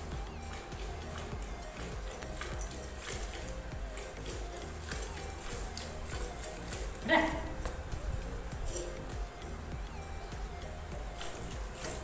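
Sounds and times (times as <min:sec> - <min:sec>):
milk squirting into steel bucket: 0:00.0 - 0:07.8.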